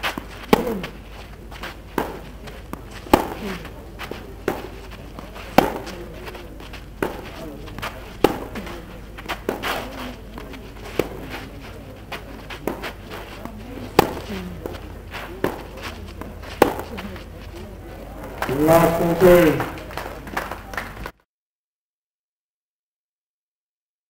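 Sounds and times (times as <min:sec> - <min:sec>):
tennis racquets striking ball: 0:00.0 - 0:21.1.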